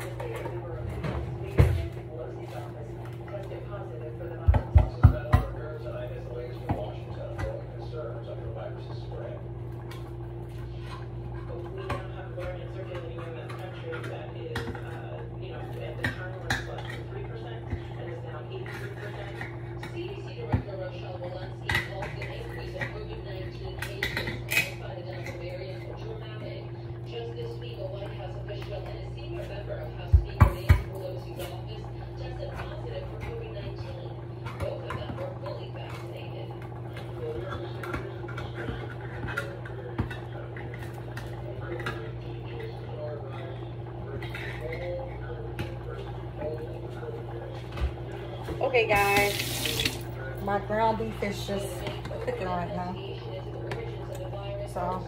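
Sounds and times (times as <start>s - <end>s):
steady hum: 0.0s - 55.0s
pots and utensils clattering: 36.9s - 46.6s.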